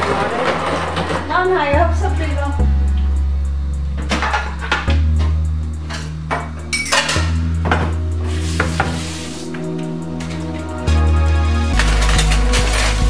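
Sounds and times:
background music with bass: 0.0s - 13.0s
dishes and utensils clinking: 5.9s - 8.0s.

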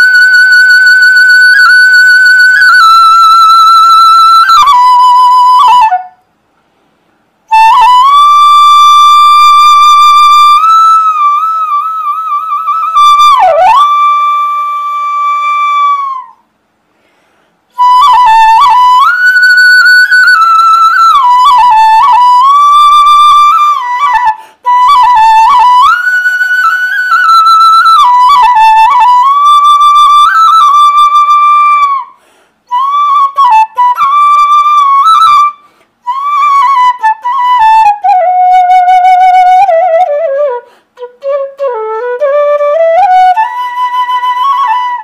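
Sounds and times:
bamboo flute melody: 0.0s - 6.4s, 7.4s - 16.6s, 17.7s - 45.0s.

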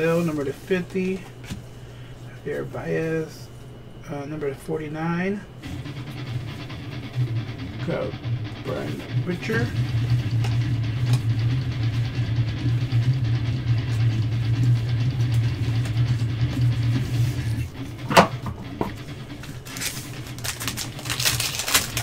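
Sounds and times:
steady low hum: 0.0s - 22.0s
foil wrapper crinkling: 19.4s - 22.0s.

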